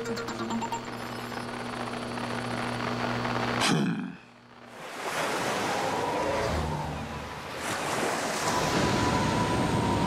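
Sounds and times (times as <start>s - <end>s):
low hum: 0.0s - 4.8s.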